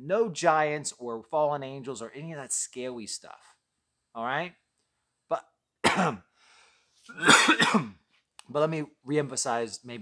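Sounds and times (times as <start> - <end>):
man coughing: 5.8 - 6.3, 7.1 - 8.0.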